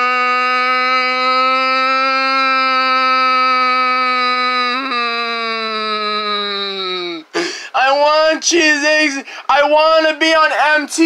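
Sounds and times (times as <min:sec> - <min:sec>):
person crying wail: 0:00.0 - 0:09.2.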